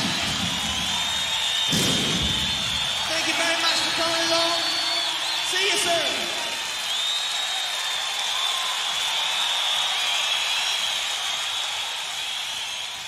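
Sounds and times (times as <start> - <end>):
audience clapping: 0.0 - 13.0
high whistles: 0.0 - 13.0.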